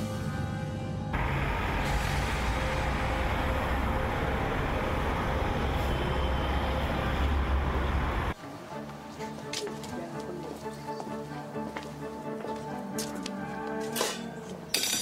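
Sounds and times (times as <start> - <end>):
music: 0.0 - 1.2, 8.3 - 15.0
busy street traffic rumble: 1.1 - 14.9.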